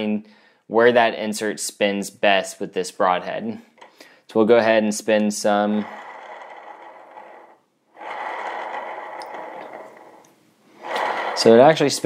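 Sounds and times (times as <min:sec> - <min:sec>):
arrow whirring on spinner rollers: 0:05.6 - 0:12.0.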